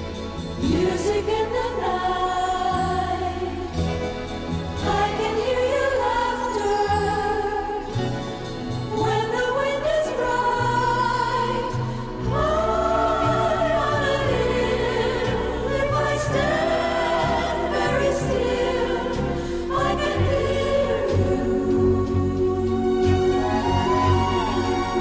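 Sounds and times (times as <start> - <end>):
strings: 0.0 - 25.0
chorus singing held phrases: 0.6 - 4.0, 4.7 - 25.0
steady bass line: 11.0 - 25.0.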